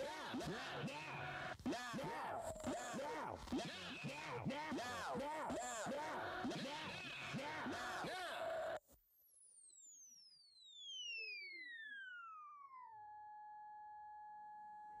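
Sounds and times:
electronic tone gliding down: 10.9s - 14.8s.

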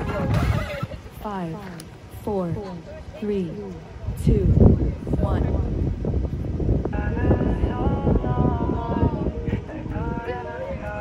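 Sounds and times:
dance music: 0.0s - 1.8s.

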